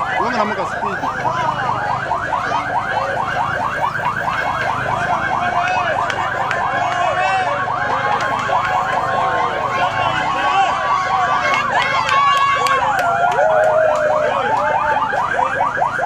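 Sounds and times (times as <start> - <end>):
electronic sirens warbling: 0.0 - 16.0.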